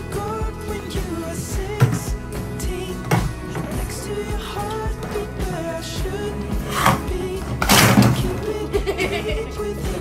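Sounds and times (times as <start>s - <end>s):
pop song: 0.0s - 10.0s.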